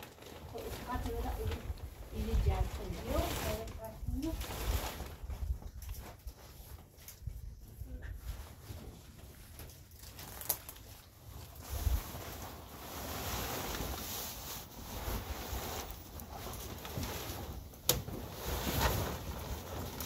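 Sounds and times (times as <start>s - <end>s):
tent fabric rustling: 0.0s - 20.0s.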